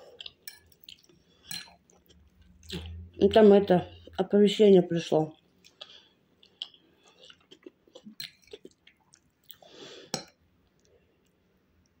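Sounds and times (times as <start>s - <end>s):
chewing rice: 0.0s - 3.0s, 5.6s - 9.8s.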